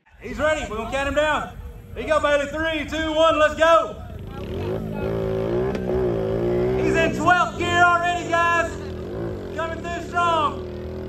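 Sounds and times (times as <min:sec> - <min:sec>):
man talking: 0:00.0 - 0:05.2, 0:06.6 - 0:10.8
four-wheeler engine revving: 0:03.8 - 0:11.0.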